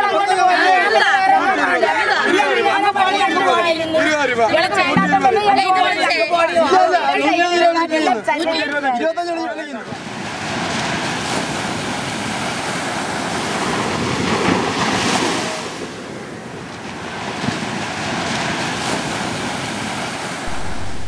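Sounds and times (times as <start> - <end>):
sea surf washing on shore: 9.8 - 21.0
wind on microphone: 11.2 - 21.0.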